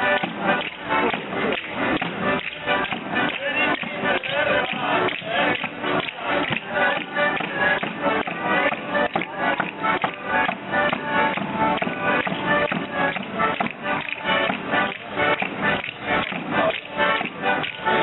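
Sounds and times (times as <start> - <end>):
folk dance music on accordion: 0.0 - 18.0.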